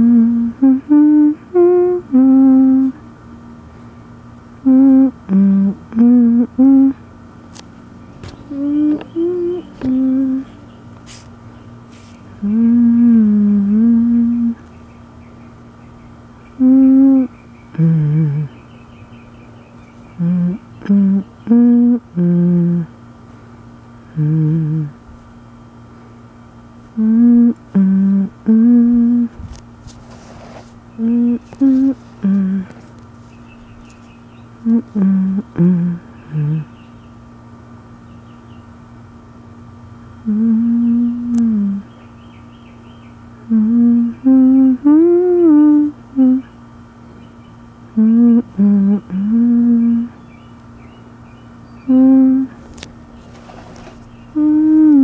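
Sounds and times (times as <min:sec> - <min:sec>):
person humming a tune: 0:00.0 - 0:03.0, 0:04.6 - 0:07.1, 0:08.4 - 0:10.6, 0:12.3 - 0:14.6, 0:16.5 - 0:18.6, 0:20.1 - 0:23.0, 0:24.0 - 0:25.0, 0:26.9 - 0:29.4, 0:30.9 - 0:32.9, 0:34.6 - 0:36.8, 0:40.2 - 0:42.0, 0:43.4 - 0:46.6, 0:47.9 - 0:50.2, 0:51.8 - 0:52.6, 0:54.3 - 0:55.0
faint steady background hum: 0:00.0 - 0:55.0.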